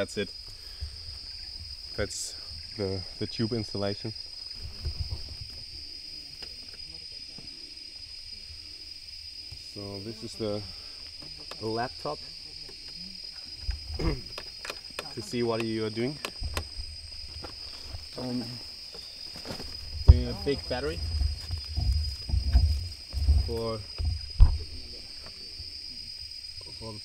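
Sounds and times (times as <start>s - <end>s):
insects droning: 0.0s - 27.0s
dull low thumps of equipment: 19.7s - 24.9s.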